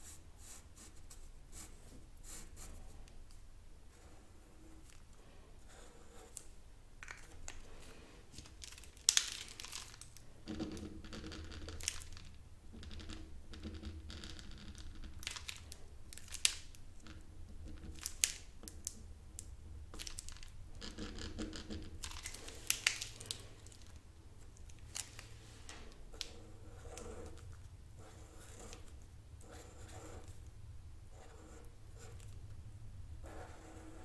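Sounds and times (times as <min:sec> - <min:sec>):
marker scratching on paper: 0:26.3 - 0:27.4, 0:28.0 - 0:30.4, 0:31.1 - 0:32.3, 0:33.2 - 0:34.0.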